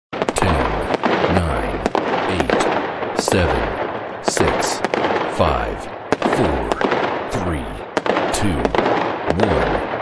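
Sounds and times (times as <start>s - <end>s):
firework bangs: 0.2s - 10.0s.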